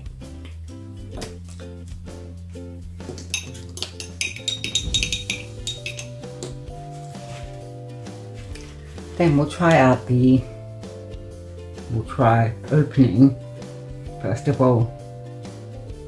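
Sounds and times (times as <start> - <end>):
metal paint tubes clinking: 3.1 - 6.7.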